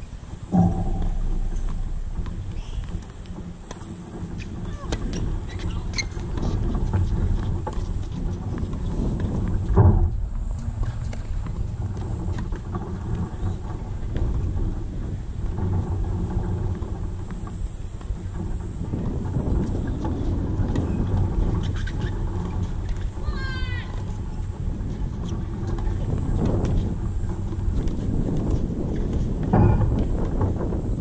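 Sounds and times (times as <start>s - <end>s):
wind buffeting microphone: 0.0s - 31.0s
loud thump: 0.5s - 3.7s, 29.5s - 30.0s.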